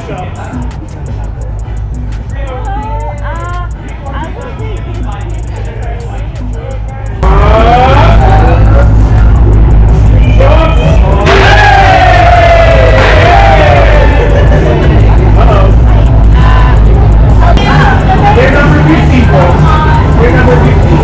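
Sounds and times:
loud music with heavy bass: 0:00.0 - 0:21.0
person singing: 0:07.2 - 0:08.9.

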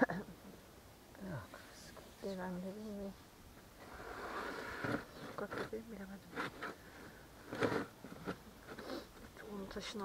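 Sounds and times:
plastic board scraping over sand: 0:03.8 - 0:09.1.

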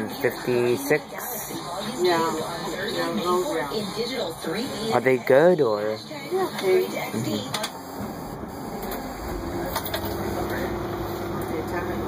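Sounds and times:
bus engine droning: 0:00.0 - 0:12.0
steady low hum: 0:00.0 - 0:12.0.

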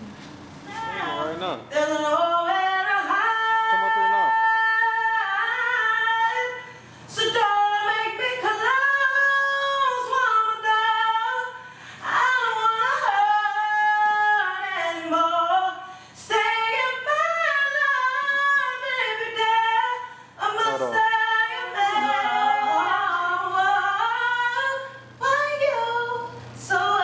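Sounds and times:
woman singing unaccompanied: 0:00.6 - 0:27.0.

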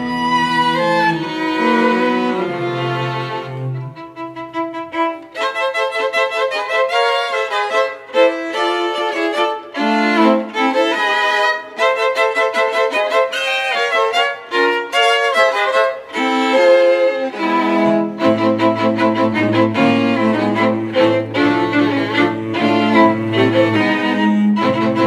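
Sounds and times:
violins and viola playing quick notes: 0:00.0 - 0:25.0.

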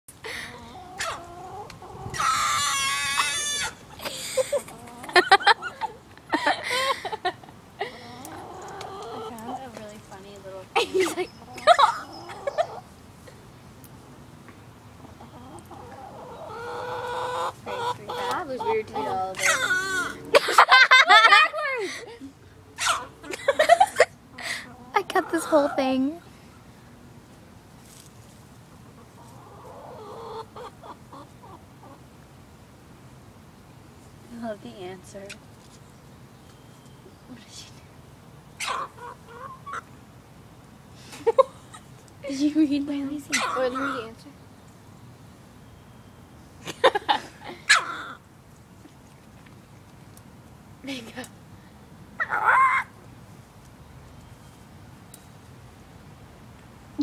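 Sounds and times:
hen squawking loudly: 0:02.1 - 0:03.8, 0:16.5 - 0:20.3, 0:52.2 - 0:53.0
hen calling: 0:15.2 - 0:20.3, 0:38.6 - 0:39.9, 0:43.2 - 0:44.3.

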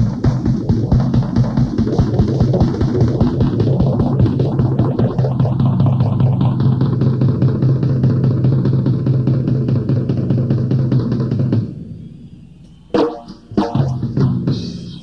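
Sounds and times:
fast rock drumming: 0:00.0 - 0:11.9, 0:12.9 - 0:15.0.

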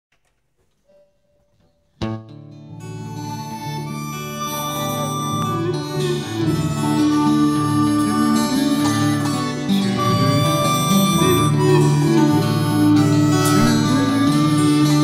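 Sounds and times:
strummed guitar: 0:00.9 - 0:15.0
harmonica playing melody: 0:02.6 - 0:15.0
bass line: 0:04.4 - 0:15.0.

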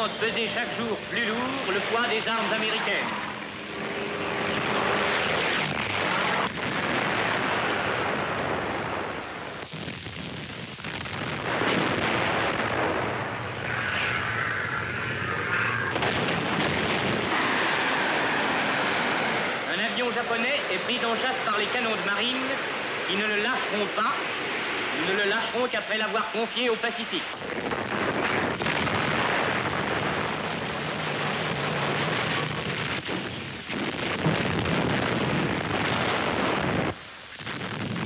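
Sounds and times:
man talking: 0:00.0 - 0:03.2, 0:19.7 - 0:24.2, 0:25.0 - 0:27.3
aircraft engines roaring: 0:00.0 - 0:37.2.

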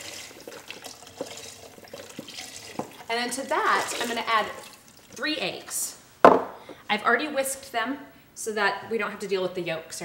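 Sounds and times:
broth pouring and splashing: 0:00.0 - 0:05.3.

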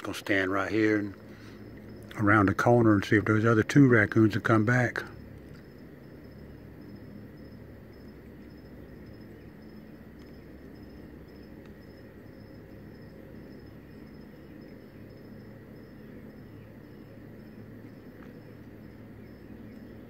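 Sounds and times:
crickets chirping: 0:00.0 - 0:20.0
faint steady trill: 0:00.0 - 0:20.0
low steady hum: 0:00.0 - 0:20.0.

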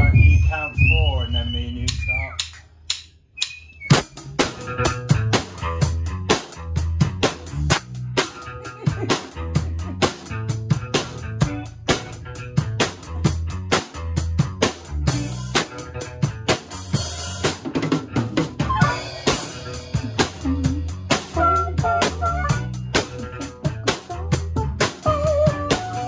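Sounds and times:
bass guitar: 0:00.0 - 0:02.4, 0:03.4 - 0:26.0
harmonica phrases: 0:00.0 - 0:02.5, 0:18.6 - 0:26.0
drum kit beat: 0:00.0 - 0:26.0
electric guitar: 0:04.3 - 0:26.0.

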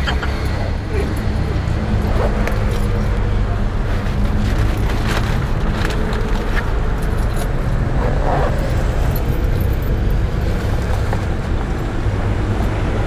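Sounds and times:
motor vehicle rumble: 0:00.0 - 0:13.0.

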